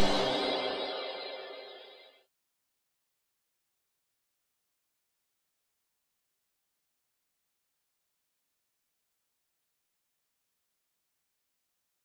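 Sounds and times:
intro jingle music: 0.0s - 2.1s.

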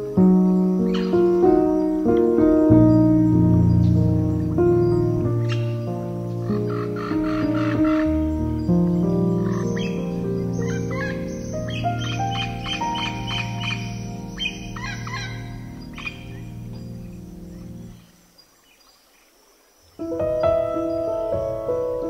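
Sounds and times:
slow piano music: 0.0s - 18.4s, 20.0s - 22.0s
birds chirping: 0.0s - 22.0s.

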